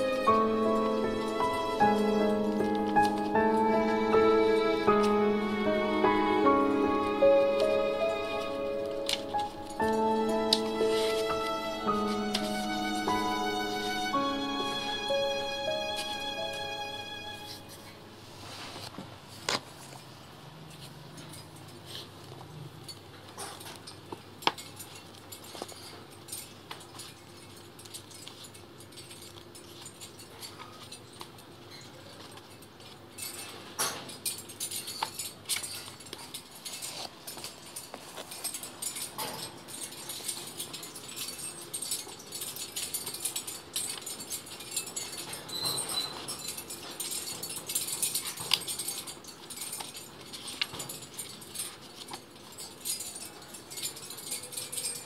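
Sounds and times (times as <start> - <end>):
thin high tone: 0.0 - 18.2
faint paper rustle: 17.4 - 21.0.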